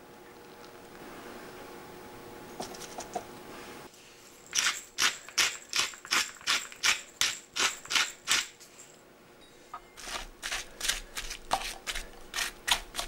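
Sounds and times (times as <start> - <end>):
pepper mill grinding: 4.5 - 8.6, 10.0 - 13.0.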